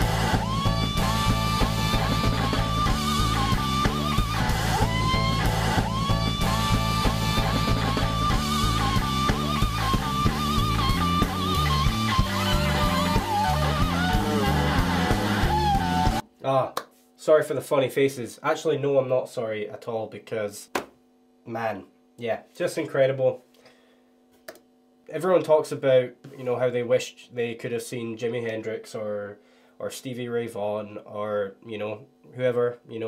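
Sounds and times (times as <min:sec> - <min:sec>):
band with drums and bass: 0:00.0 - 0:16.2
electric slide guitar solo: 0:00.0 - 0:16.2.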